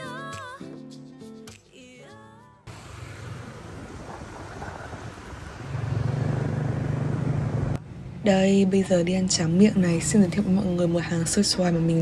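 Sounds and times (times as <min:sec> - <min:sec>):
street traffic hum: 0:02.6 - 0:12.0
engine running close by: 0:02.7 - 0:08.2.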